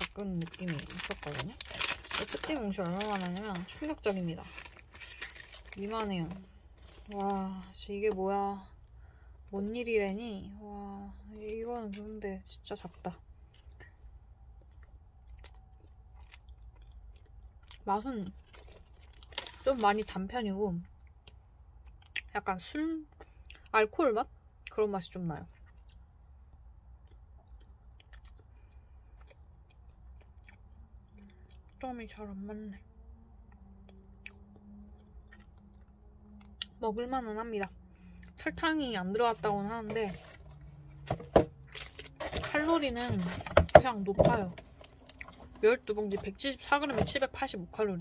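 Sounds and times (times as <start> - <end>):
person chewing cake: 13.5 - 19.6, 25.5 - 31.8, 33.5 - 36.8, 44.6 - 45.6
small clicks and mouth sounds: 27.0 - 31.8.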